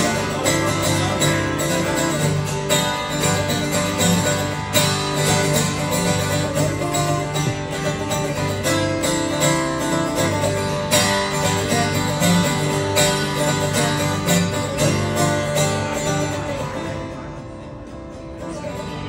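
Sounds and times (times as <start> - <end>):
acoustic guitars strumming: 0.0 - 19.0.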